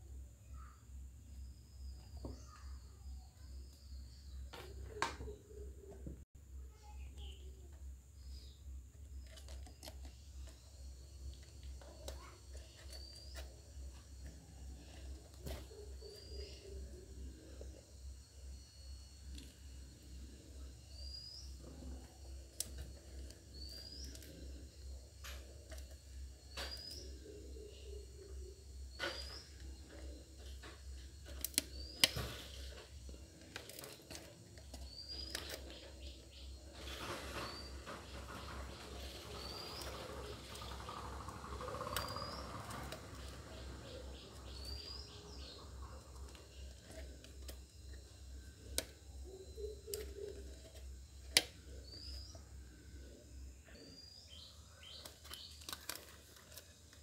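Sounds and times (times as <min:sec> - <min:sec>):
steady low hum: 0:00.0 - 0:57.0
bird chirping: 0:00.4 - 0:07.5, 0:08.2 - 0:56.6
wires being handled: 0:09.0 - 0:17.8, 0:21.6 - 0:27.2, 0:29.0 - 0:52.2, 0:54.9 - 0:57.0.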